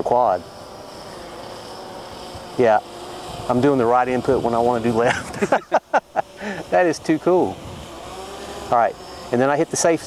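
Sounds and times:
drone motors buzzing: 0:00.0 - 0:10.0.

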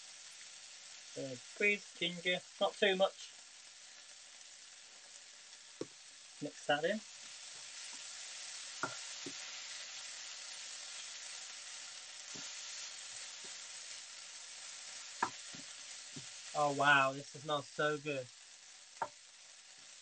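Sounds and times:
chicken sizzling in frying pan: 0:00.0 - 0:20.0
wooden spoon knocking pan: 0:08.8 - 0:09.4, 0:15.2 - 0:16.3.

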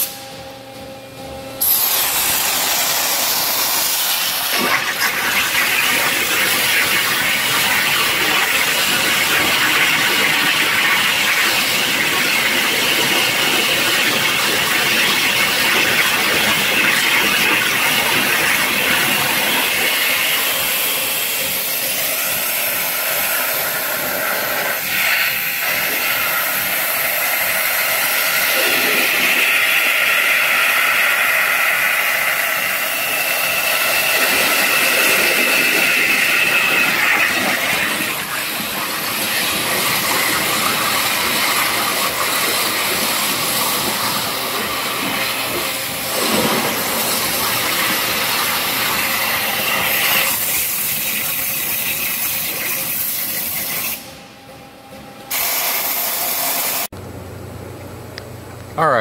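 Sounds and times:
waterjet hissing through metal: 0:01.6 - 0:54.1, 0:55.3 - 0:56.9.

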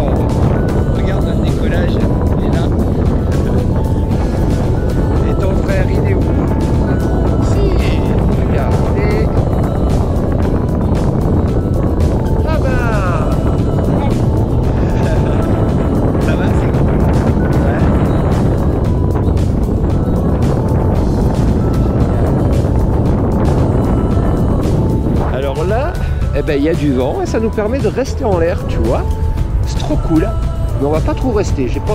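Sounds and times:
wind buffeting microphone: 0:00.0 - 0:31.9.

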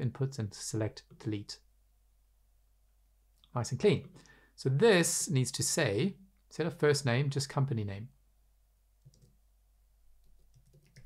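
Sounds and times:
computer keyboard typing: 0:09.0 - 0:09.4, 0:10.2 - 0:11.0.

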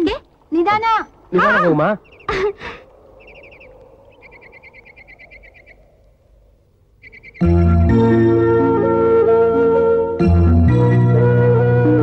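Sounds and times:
faint background hiss: 0:00.0 - 0:07.7
bird chirping rapidly: 0:00.8 - 0:07.8.

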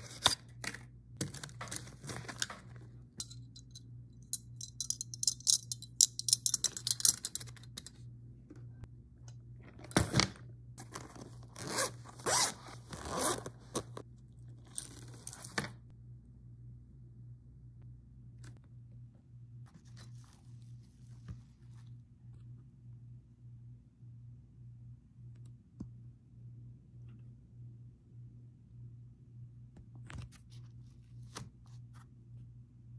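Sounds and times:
pencil case rustling: 0:00.0 - 0:02.9
metal binder clips clinking: 0:03.2 - 0:07.9.

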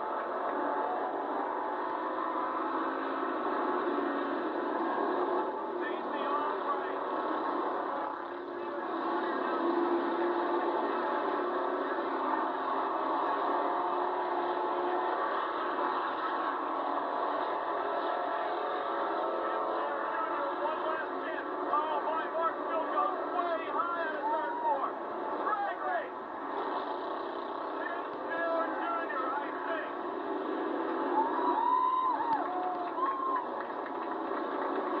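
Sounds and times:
race car engines droning: 0:00.0 - 0:35.0.

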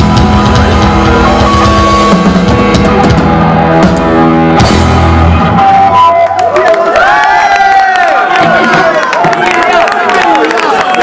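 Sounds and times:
punk rock band playing live: 0:00.0 - 0:06.6.

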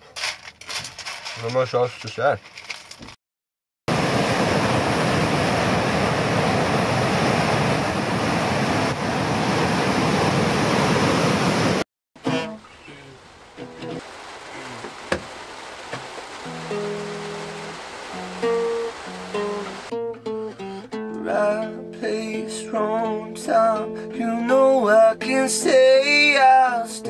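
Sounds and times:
handling noise: 0:00.0 - 0:03.2
ocean surf breaking: 0:03.9 - 0:19.9
acoustic guitar notes plucked: 0:12.2 - 0:14.0, 0:16.5 - 0:27.0.

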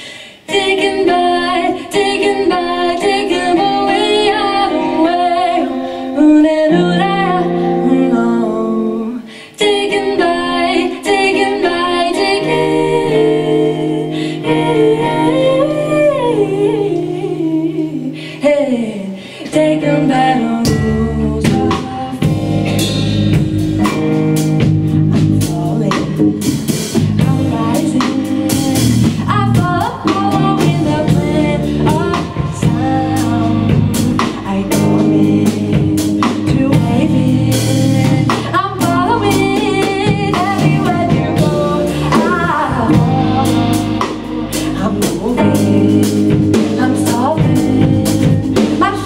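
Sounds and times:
women singing: 0:00.0 - 0:22.9, 0:25.1 - 0:49.0
guitar: 0:00.0 - 0:49.0
bass guitar: 0:00.8 - 0:18.4, 0:19.4 - 0:49.0
drum kit: 0:20.6 - 0:49.0.

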